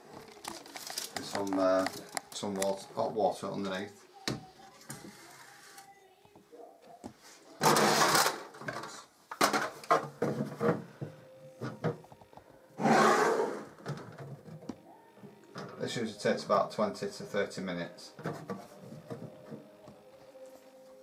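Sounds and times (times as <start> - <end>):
loud harsh noises: 7.6 - 8.6, 12.8 - 13.9.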